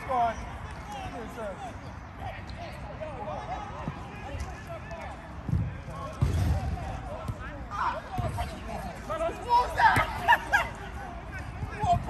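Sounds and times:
footballers shouting: 0.0 - 12.0.

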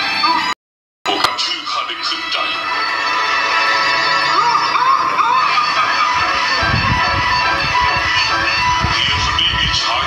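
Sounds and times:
background music: 0.0 - 10.0
voices: 4.2 - 10.0.

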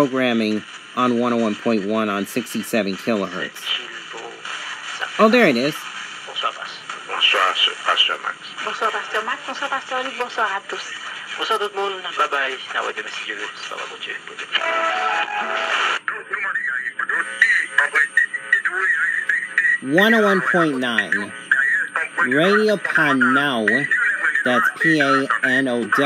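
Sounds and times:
music on thin radio speaker: 0.0 - 26.0
radio talk: 0.0 - 26.0.

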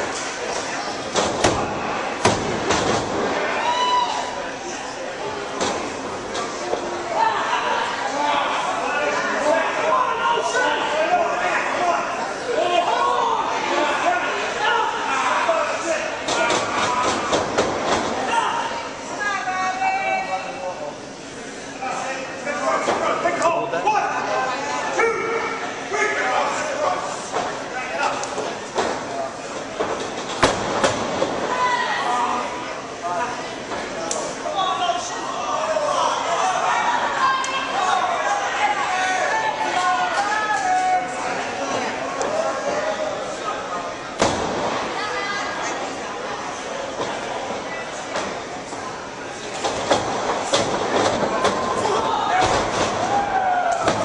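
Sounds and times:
people shouting in a hall: 3.2 - 4.8, 7.1 - 17.6, 23.3 - 26.9, 31.5 - 32.6, 34.4 - 43.7, 51.1 - 54.0
spectators shouting: 3.3 - 4.6, 51.3 - 54.0
long drawn-out yell: 3.5 - 4.4.

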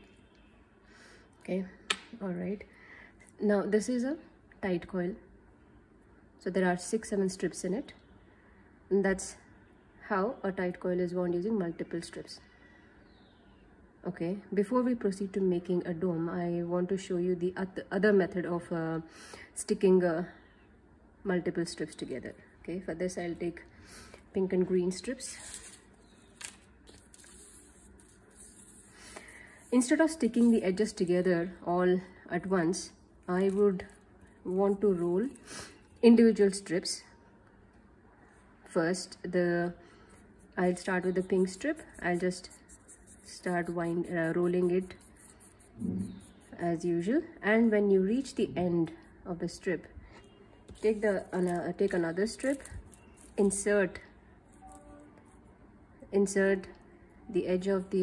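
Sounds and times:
faint steady hum: 0.0 - 58.0
paper strips rustling: 25.2 - 30.6, 50.7 - 53.7.

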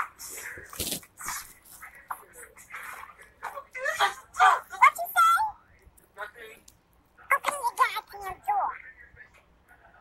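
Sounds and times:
scuffling noises: 0.0 - 3.6.

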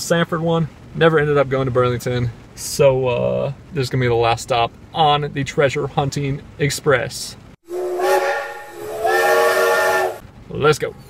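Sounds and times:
steam locomotive whistle: 7.6 - 10.2
steam hissing: 7.7 - 10.2.

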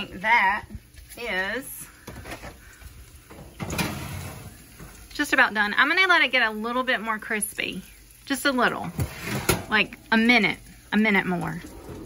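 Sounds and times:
oven door opening: 3.6 - 4.5.

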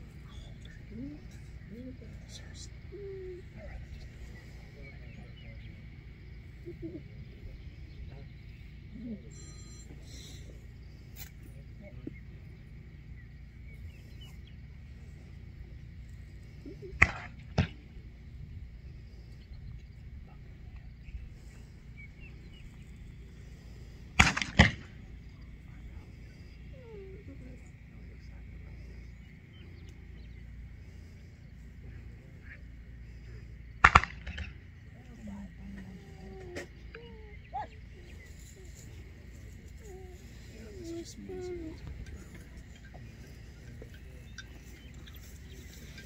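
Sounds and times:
shotgun shots: 24.2 - 24.9, 33.8 - 34.5.

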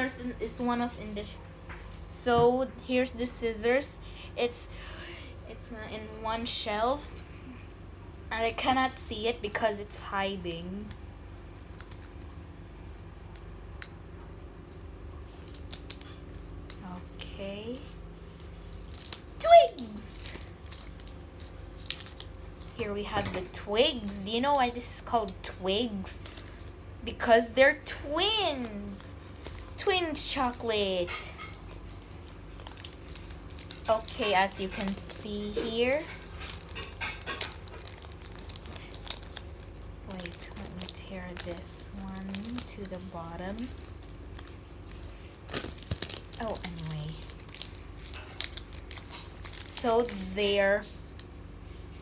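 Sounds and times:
low background hum: 0.0 - 52.0
plastic wrapper crinkling: 8.6 - 51.9.

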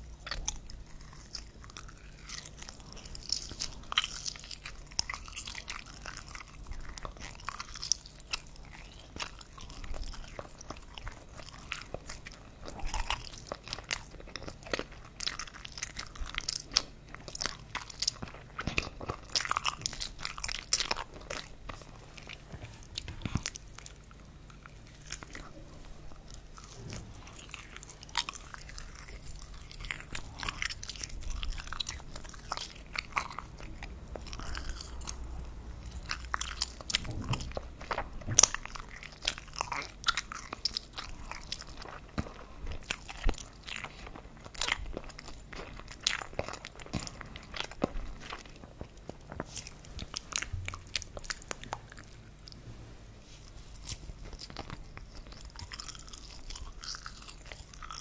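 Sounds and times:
chewing sausages: 0.0 - 58.0.

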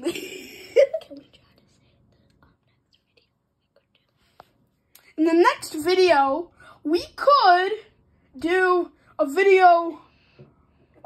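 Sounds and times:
person whispering: 1.1 - 4.5.

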